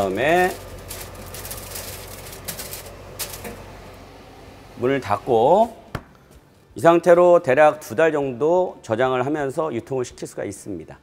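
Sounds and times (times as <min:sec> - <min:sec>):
paper rustling: 0:00.0 - 0:03.6.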